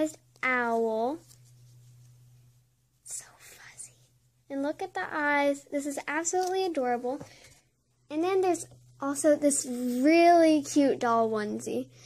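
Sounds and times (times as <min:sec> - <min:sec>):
low steady hum: 0:00.0 - 0:12.0
person whispering: 0:03.0 - 0:04.1.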